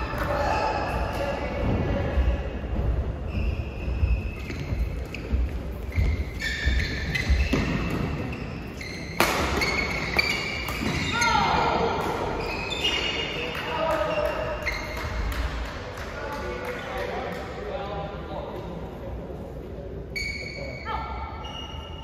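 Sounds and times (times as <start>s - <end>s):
court shoes squeaking: 0.0s - 15.6s, 20.1s - 22.0s
racket hitting shuttlecock: 9.0s - 11.2s.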